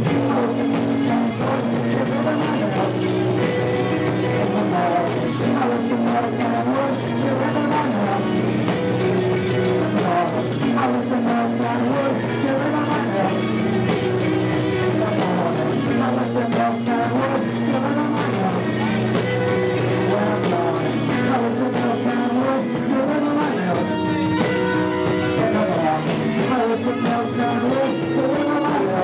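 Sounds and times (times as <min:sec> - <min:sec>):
live rock band playing: 0:00.0 - 0:29.0.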